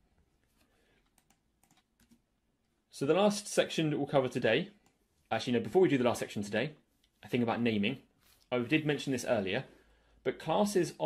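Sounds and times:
faint keyboard clicks: 0.5s - 2.8s.

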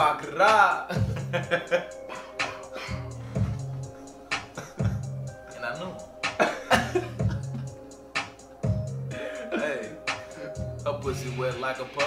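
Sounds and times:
hip-hop beat: 0.0s - 12.0s
men laughing loudly: 0.9s - 3.6s, 4.5s - 5.1s, 6.4s - 7.8s
rapping: 10.8s - 12.0s.

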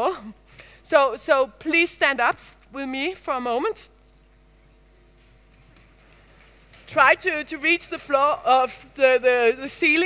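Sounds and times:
woman speaking: 0.0s - 4.0s, 6.9s - 10.0s
faint steady hum: 0.0s - 10.0s
audience shuffling and knocking: 4.0s - 8.4s.

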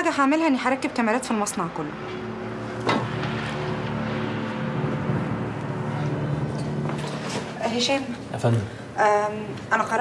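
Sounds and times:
low droning hum: 0.0s - 10.0s.

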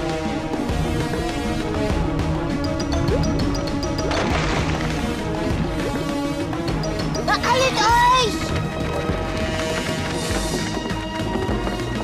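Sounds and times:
cartoon soundtrack music: 0.0s - 12.0s
splash and crash effect: 4.0s - 5.8s.

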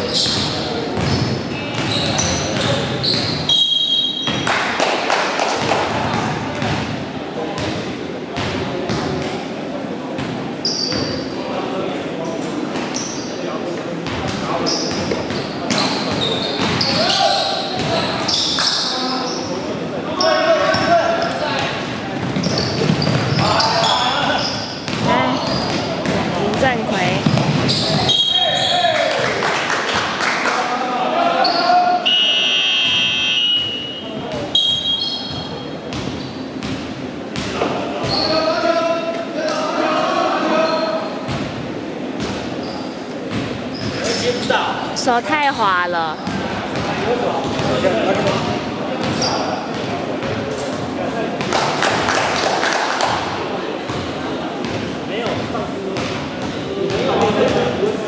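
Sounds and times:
basketball bouncing on hardwood floor: 27.2s - 27.7s.

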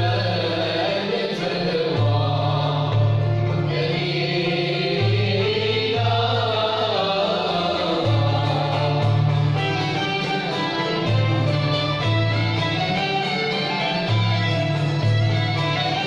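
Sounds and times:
bowed strings: 0.0s - 16.0s
chorus singing: 0.0s - 16.0s
plucked lutes: 0.0s - 16.0s.

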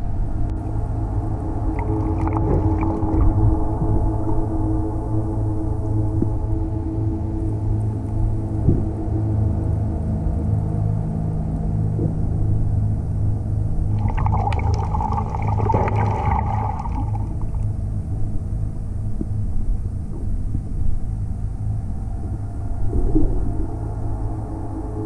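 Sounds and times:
boat motor droning underwater: 0.0s - 25.0s
crackling bubbly water: 1.7s - 3.5s, 13.9s - 17.8s.

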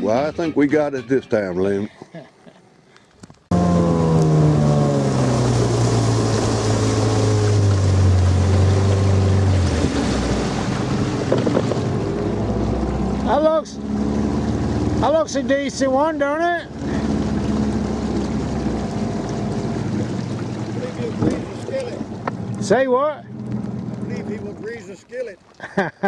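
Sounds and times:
outboard motor running: 3.5s - 25.7s.

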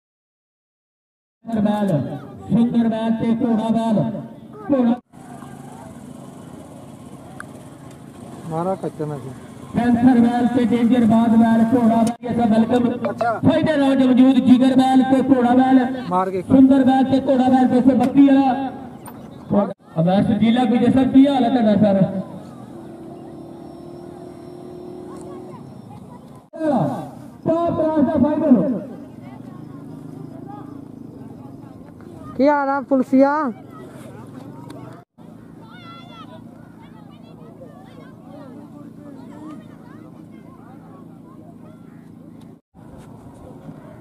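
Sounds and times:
outdoor background noise: 1.4s - 44.0s
faint distant voices: 1.8s - 44.0s
steady motor hum: 5.1s - 44.0s.

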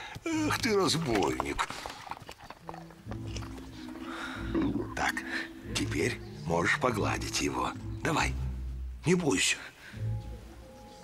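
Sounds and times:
orchestral music low notes: 3.0s - 11.0s.

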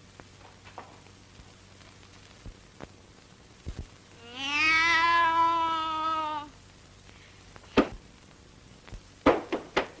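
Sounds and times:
girl imitating cat meow: 4.2s - 6.6s.

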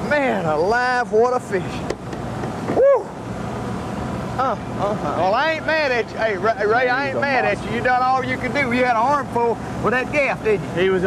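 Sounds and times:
boat noise: 0.0s - 11.0s
person exclaiming: 2.8s - 3.2s.

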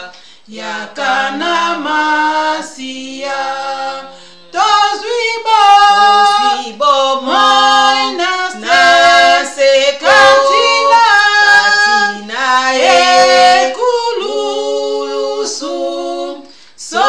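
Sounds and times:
women singing a hymn: 0.0s - 17.0s.

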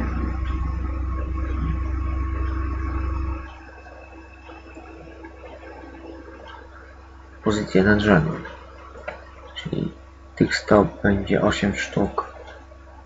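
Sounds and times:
faint steady tone: 0.0s - 13.0s
low electrical hum: 0.0s - 13.0s
microphone hiss: 0.0s - 13.0s.

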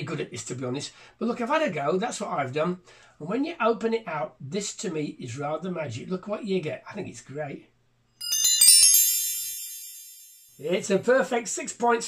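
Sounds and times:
shimmering bell-like chime: 8.2s - 10.7s.

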